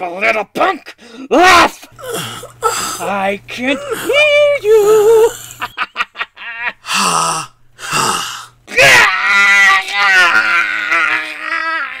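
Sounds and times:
man shrieking and wailing: 0:01.3 - 0:05.4, 0:06.9 - 0:12.0
man gasping in pain: 0:02.0 - 0:03.1, 0:06.8 - 0:08.6.

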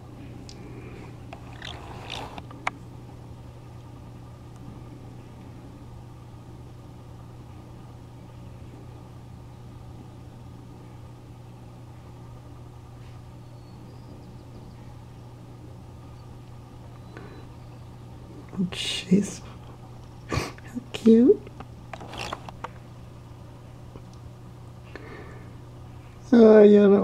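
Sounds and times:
low machine hum: 0:00.0 - 0:27.0.

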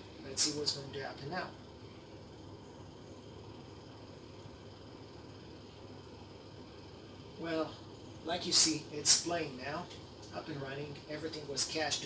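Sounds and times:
low even hiss: 0:00.0 - 0:12.0.

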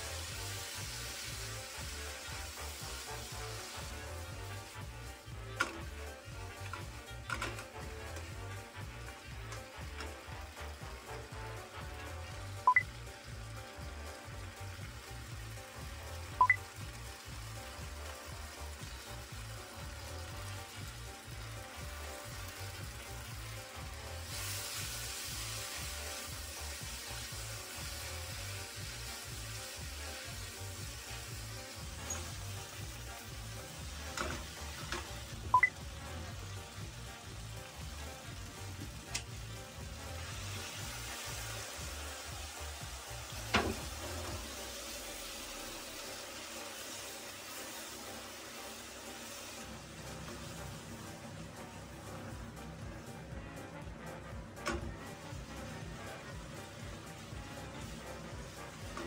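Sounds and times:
background music with low beat: 0:00.0 - 0:59.0
food sizzling in a frying pan: 0:00.0 - 0:59.0.

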